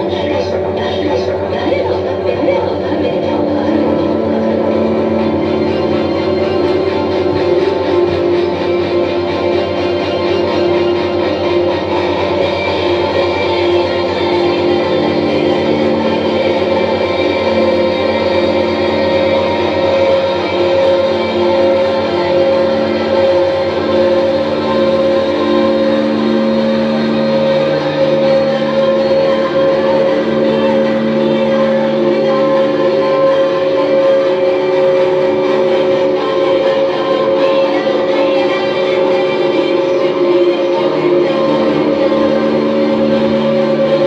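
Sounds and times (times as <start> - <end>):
electronic drone music: 0.0 - 44.0.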